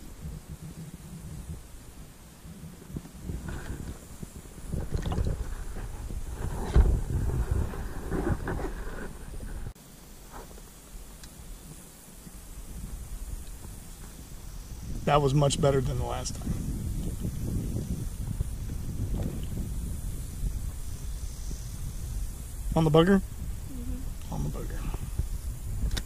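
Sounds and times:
wind buffeting microphone: 0.0s - 9.8s, 10.8s - 26.0s
hiss: 0.0s - 26.0s
knocks and rustles: 0.2s - 14.3s.

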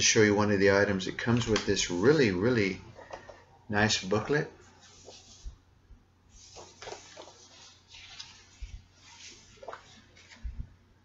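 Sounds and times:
paper rustling: 6.3s - 10.8s.

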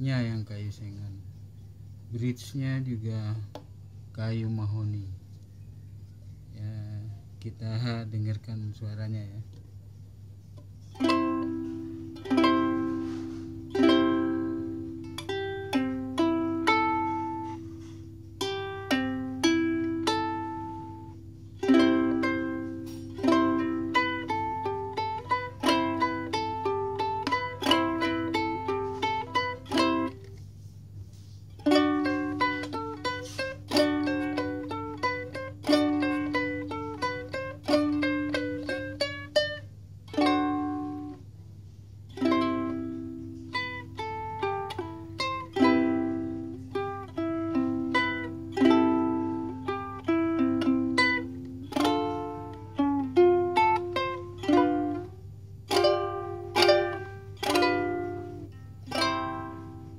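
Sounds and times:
ukulele finger-picked melody: 10.5s - 59.9s.

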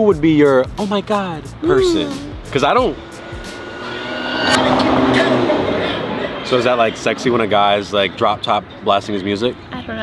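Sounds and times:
car road noise: 1.4s - 10.0s.

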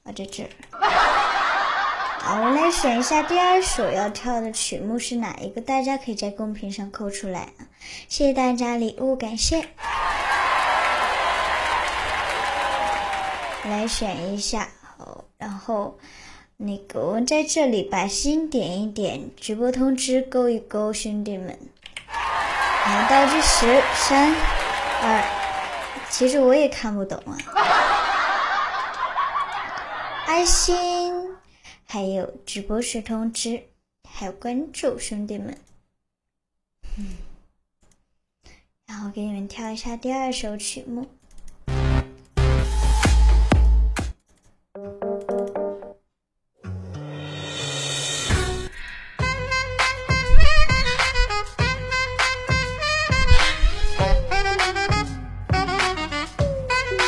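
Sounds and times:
person laughing: 0.8s - 3.9s.

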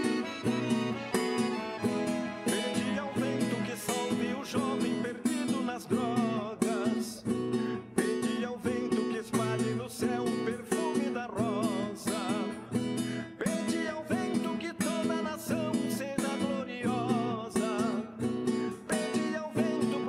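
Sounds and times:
classical guitar strumming: 0.0s - 20.0s.

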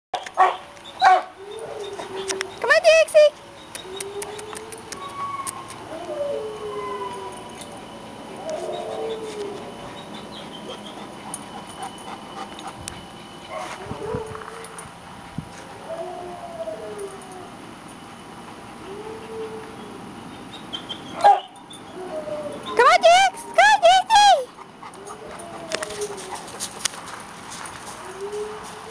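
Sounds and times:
dog whining: 0.3s - 2.9s, 3.6s - 12.8s, 15.8s - 17.6s, 18.8s - 26.9s
dog barking: 0.4s - 1.3s, 21.2s - 21.5s.

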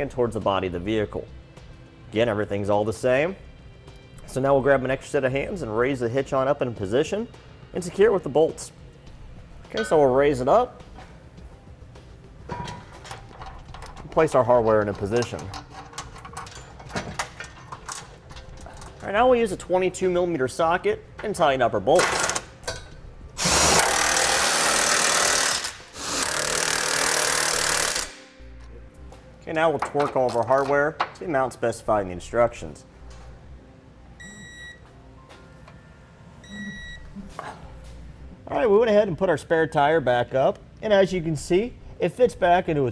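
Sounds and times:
metal bolts clinking on steel: 9.7s - 10.1s, 12.4s - 19.7s, 21.2s - 23.0s, 29.7s - 31.2s.

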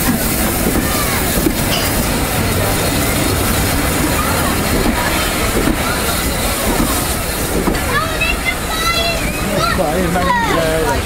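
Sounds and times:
train rolling past: 0.0s - 11.0s.

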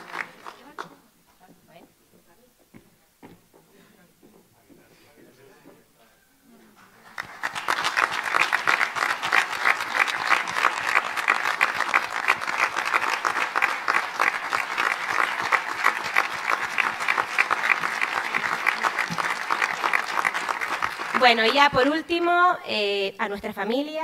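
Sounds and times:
audience applauding: 0.0s - 1.0s, 6.9s - 22.2s.

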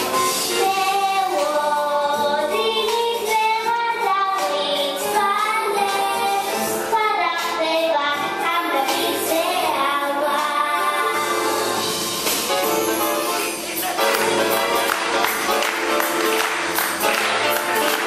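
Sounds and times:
musical accompaniment: 0.0s - 18.0s
girl singing: 0.5s - 11.4s.

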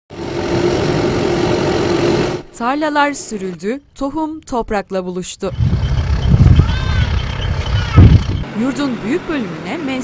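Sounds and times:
tractor engine running under load: 5.5s - 10.0s.

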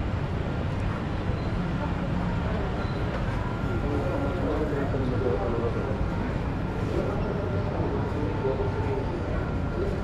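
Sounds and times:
street noise rumble: 0.0s - 10.0s.

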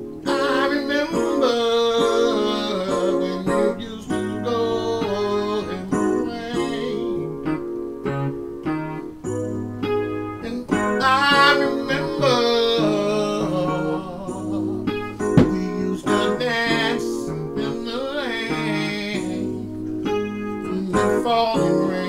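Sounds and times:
electronic keyboard chords: 0.0s - 22.0s
man singing: 0.2s - 7.6s, 10.4s - 22.0s.

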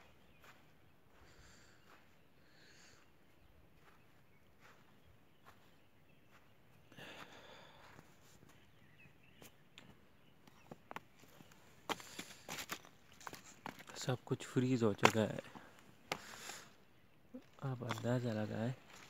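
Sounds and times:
footsteps crunching on frozen ground: 0.0s - 19.0s
feet clicking on loose stones: 10.4s - 16.8s, 17.4s - 19.0s.

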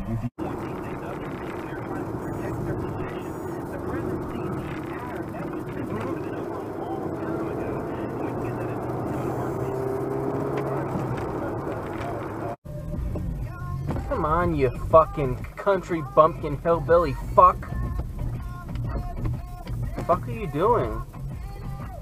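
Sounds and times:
indistinct talk: 0.0s - 10.0s
car road and engine noise: 0.0s - 22.0s.

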